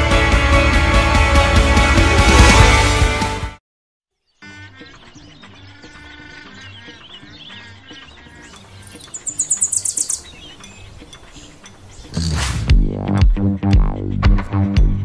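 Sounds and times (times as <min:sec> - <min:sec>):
small birds chirping: 0:04.2 - 0:12.4
high-pitched bird trill: 0:04.7 - 0:12.1.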